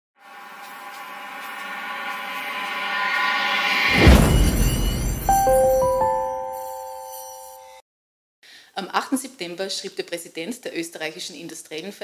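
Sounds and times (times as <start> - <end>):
sustained chord riser: 0.2 - 7.6
deep low boom: 3.8 - 6.2.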